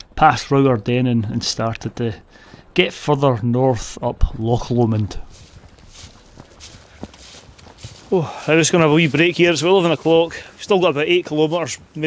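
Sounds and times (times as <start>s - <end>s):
footsteps on thin snow: 0.6s - 12.0s.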